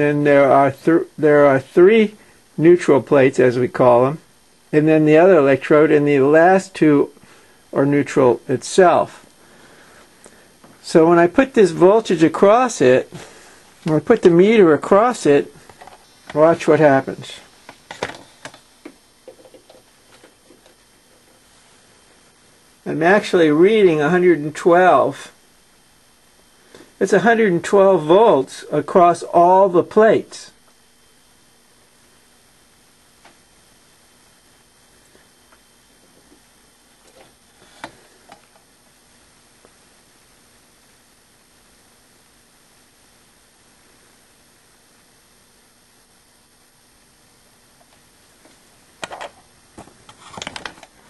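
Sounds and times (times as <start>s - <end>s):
faint steady hiss: 0.0s - 51.0s.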